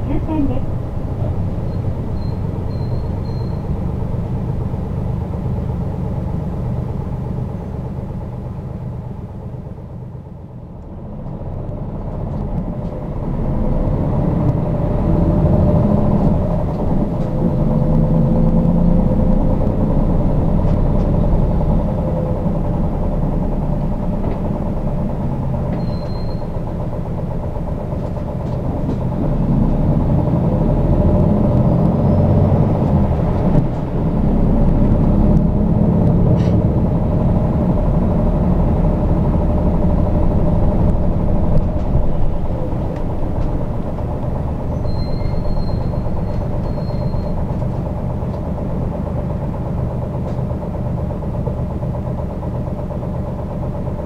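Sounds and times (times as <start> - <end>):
bus engine and road noise: 0.0 - 54.0.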